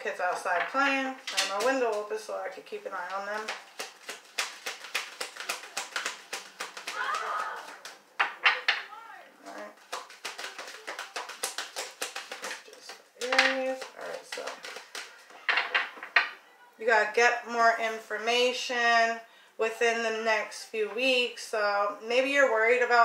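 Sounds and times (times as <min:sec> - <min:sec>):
cards being shuffled: 0:01.2 - 0:08.8, 0:09.4 - 0:16.3
children calling out: 0:06.9 - 0:08.0.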